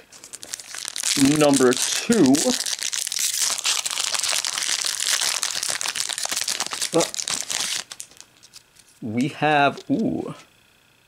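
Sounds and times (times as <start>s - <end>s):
foil wrapper tearing and crinkling: 0.0s - 8.6s.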